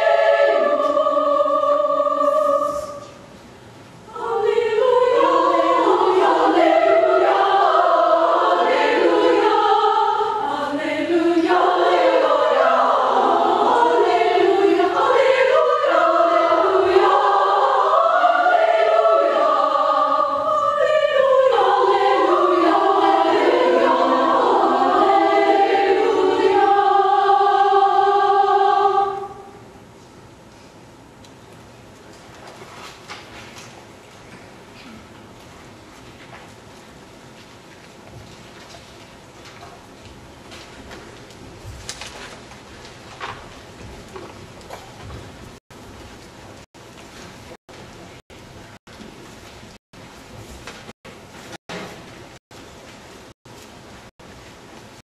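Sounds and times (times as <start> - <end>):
women's choir singing: 0.0 - 3.2, 4.1 - 29.6.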